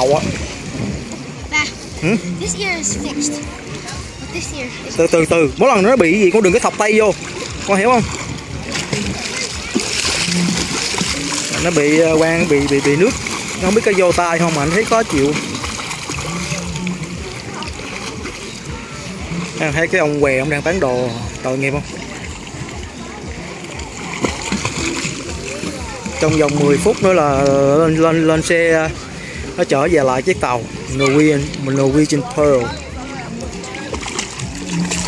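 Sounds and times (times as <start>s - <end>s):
faint voices: 0.0s - 35.0s
water splashing from swimming: 0.0s - 35.0s.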